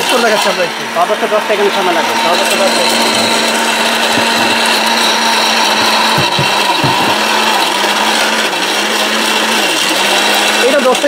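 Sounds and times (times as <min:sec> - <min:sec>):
mixer grinder motor grinding: 0:00.0 - 0:11.0.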